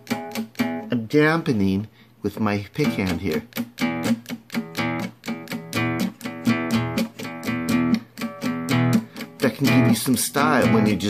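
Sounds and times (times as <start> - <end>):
muted acoustic guitar power chords: 0.0 - 1.1, 2.8 - 11.0.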